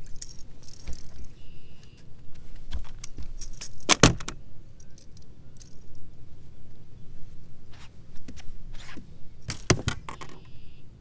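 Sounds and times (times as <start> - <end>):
metallic rattle: 0.0 - 1.4, 2.9 - 6.0.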